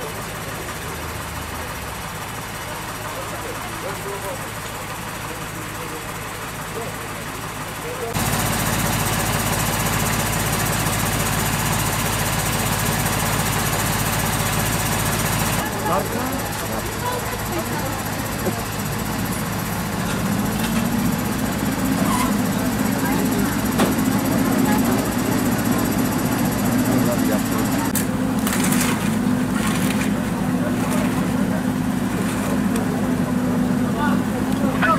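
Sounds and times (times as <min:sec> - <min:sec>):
vehicle engine idling: 0:00.0 - 0:34.9
people talking indistinctly: 0:02.5 - 0:08.2, 0:15.6 - 0:28.8.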